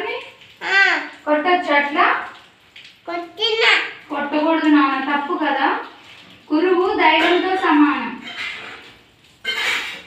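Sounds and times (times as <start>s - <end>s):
young child talking: 0.6s - 1.2s, 3.1s - 4.1s.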